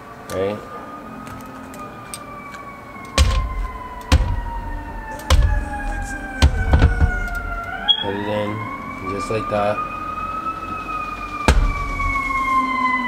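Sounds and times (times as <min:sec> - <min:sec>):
siren wailing: 0:00.0 - 0:13.0.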